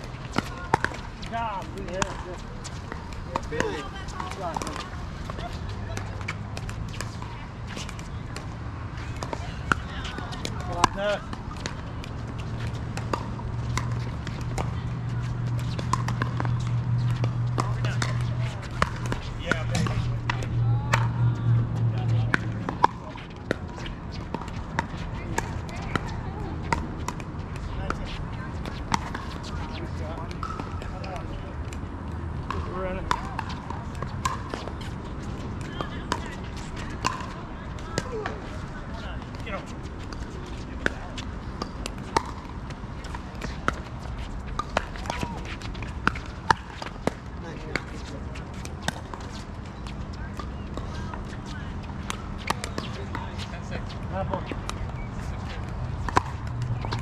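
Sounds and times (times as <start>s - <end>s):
paddles striking plastic balls: 26.7s - 37.4s, 39.3s - 51.4s.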